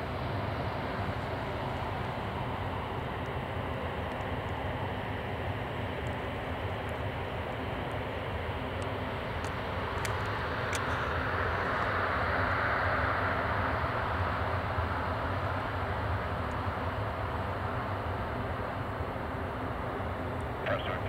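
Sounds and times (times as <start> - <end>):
jet engines at takeoff power: 0.0 - 21.0.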